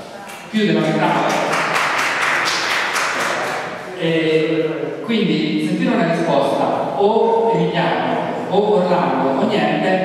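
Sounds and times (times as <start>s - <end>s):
speaker talking: 0.4s - 10.0s
audience applause: 1.0s - 3.7s.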